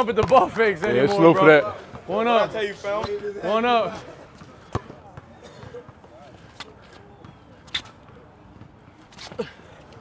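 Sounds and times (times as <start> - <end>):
faint crowd chatter: 0.0 - 10.0.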